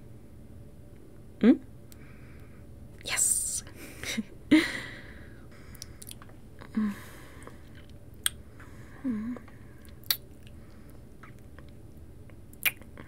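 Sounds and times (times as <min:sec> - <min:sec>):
wet kissing lip smacks: 0:12.6 - 0:12.9.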